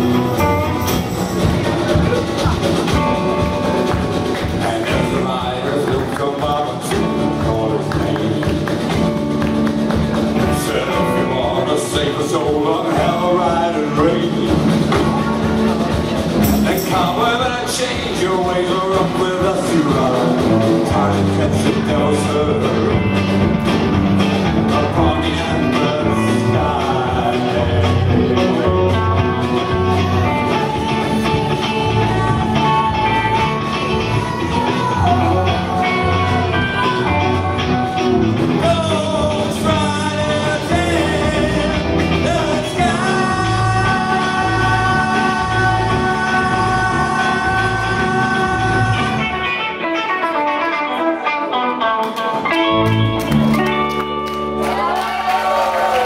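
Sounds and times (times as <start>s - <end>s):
person singing: 0.0s - 53.9s
rock and roll band playing: 0.0s - 56.0s.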